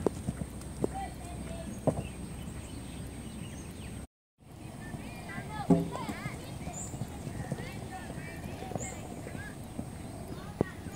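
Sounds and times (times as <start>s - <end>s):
hooves thudding on sand: 4.9s - 10.9s.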